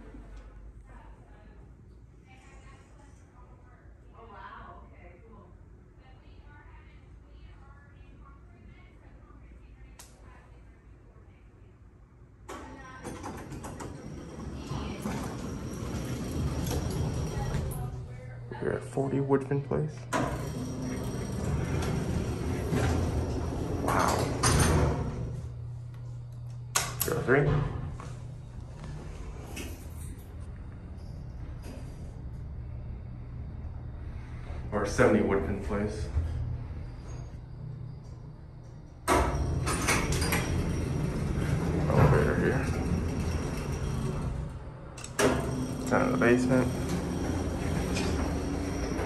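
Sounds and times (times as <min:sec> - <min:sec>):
elevator door sliding rumble: 0:12.8 - 0:18.5, 0:20.0 - 0:49.0.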